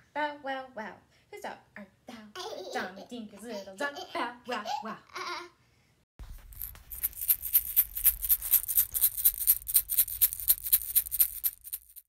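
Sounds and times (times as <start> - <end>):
egg shaker shaken: 6.2 - 12.0.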